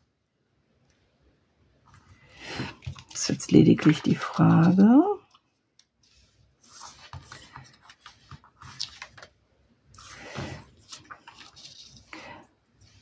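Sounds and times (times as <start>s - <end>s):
paper rustles: 6.0s - 13.0s.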